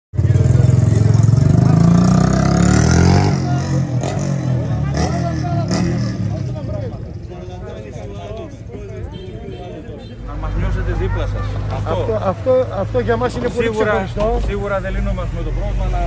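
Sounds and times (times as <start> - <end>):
vehicle engine revving: 0.2 - 6.9
people talking: 0.2 - 16.0.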